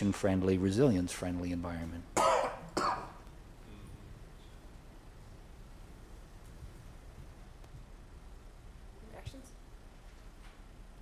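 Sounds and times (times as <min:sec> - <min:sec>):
man clearing his throat: 0:02.2 - 0:03.2.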